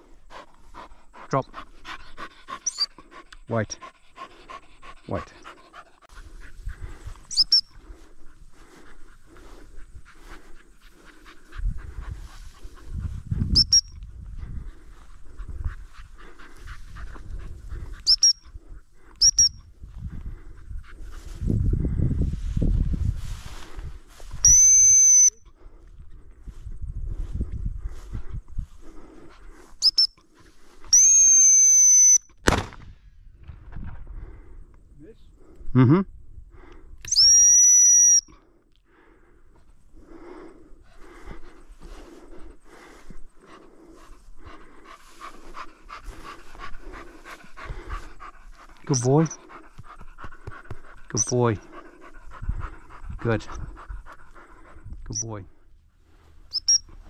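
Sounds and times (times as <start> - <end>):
gundog whistle pips and blasts: 7.3 - 7.6, 13.6 - 13.9, 19.2 - 19.6, 24.4 - 25.4, 29.8 - 30.1, 30.9 - 32.3, 37.0 - 38.3, 56.5 - 56.9.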